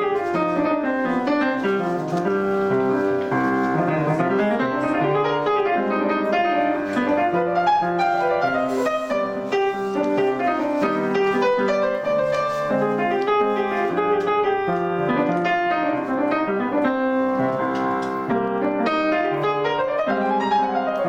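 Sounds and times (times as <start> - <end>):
grand piano playing solo: 0.0 - 21.0.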